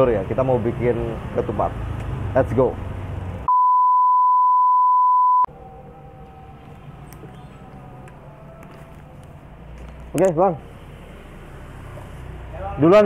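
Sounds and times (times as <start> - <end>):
high-pitched electronic beep: 3.5 - 5.5.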